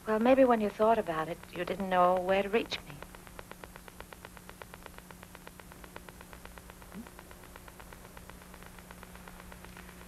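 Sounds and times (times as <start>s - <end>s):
fast even ticking: 0.0s - 10.0s
film soundtrack hiss: 0.0s - 10.0s
low steady hum: 0.0s - 10.0s.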